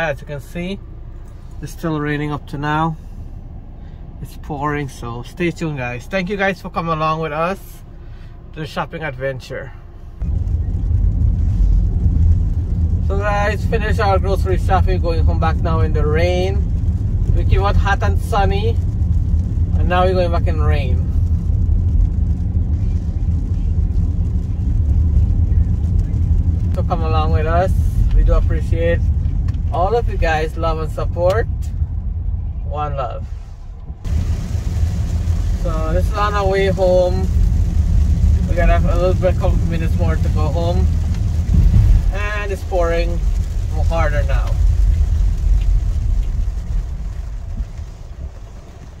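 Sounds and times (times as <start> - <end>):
car engine and road noise: 0.0 - 49.0.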